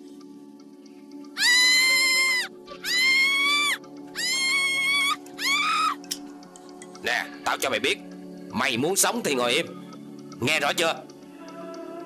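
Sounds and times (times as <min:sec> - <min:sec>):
woman screaming: 0:01.4 - 0:06.0.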